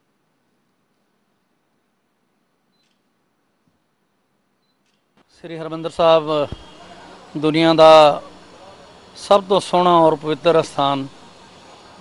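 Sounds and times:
camera focus beep: 2.7s - 3.1s, 4.6s - 5.0s.

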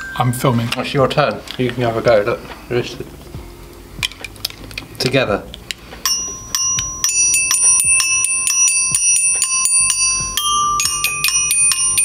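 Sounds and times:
toy glockenspiel notes: 0.0s - 1.2s, 6.0s - 12.0s.

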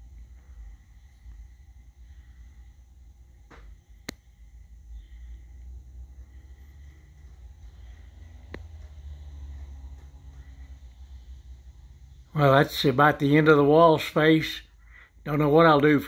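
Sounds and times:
steady low rumble: 0.0s - 16.0s.

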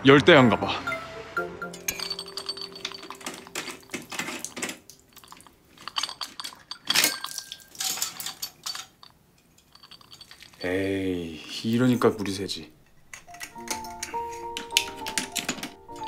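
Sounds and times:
metallic clicks of tools on drain: 1.9s - 10.6s, 12.8s - 16.0s.

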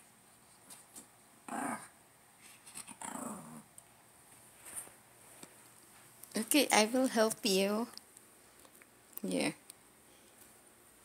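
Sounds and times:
dog growling whine: 1.5s - 1.9s, 2.9s - 3.7s.

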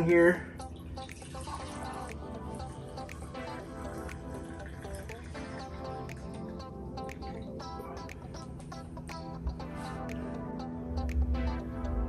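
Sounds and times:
background music: 0.0s - 12.0s
coffee pouring into a mug: 0.7s - 6.6s.

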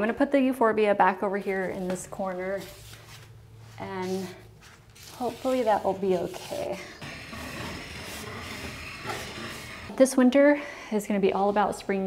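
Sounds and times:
plant pot scraping on tile floor: 2.6s - 10.0s.

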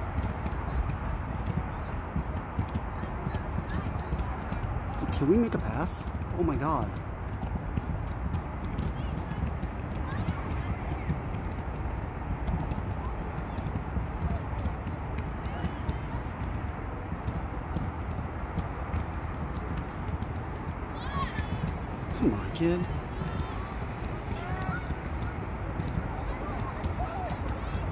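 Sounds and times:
faint distant voices: 0.0s - 7.0s, 7.6s - 27.9s.

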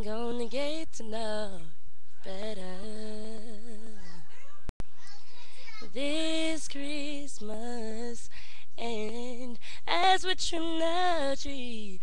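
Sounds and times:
woman singing a cappella: 0.0s - 4.2s, 5.9s - 12.0s.

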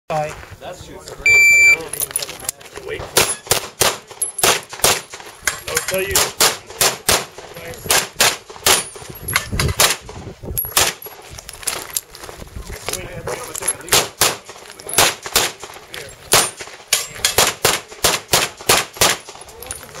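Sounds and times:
pistol shots: 3.1s - 5.2s, 6.1s - 8.9s, 9.7s - 10.1s, 10.7s - 11.0s, 13.9s - 15.7s, 16.3s - 19.4s.

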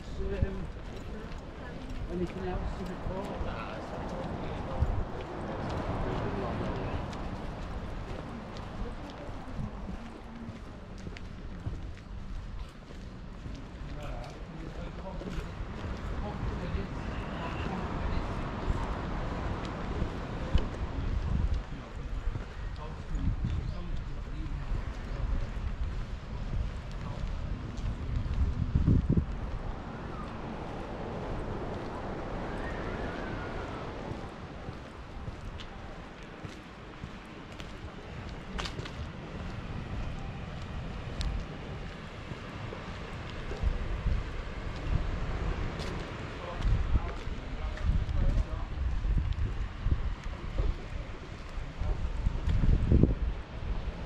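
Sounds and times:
faint voices: 0.0s - 54.0s
footsteps on stone paving: 0.0s - 54.0s
steady outdoor rush: 0.0s - 54.0s
wind on microphone: 0.0s - 54.0s.

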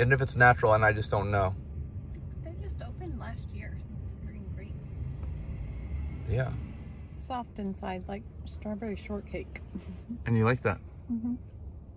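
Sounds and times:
car cabin rumble: 0.0s - 11.9s.

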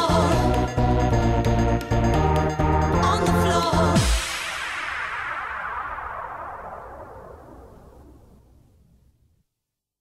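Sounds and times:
hazy synth wash: 4.0s - 8.9s.

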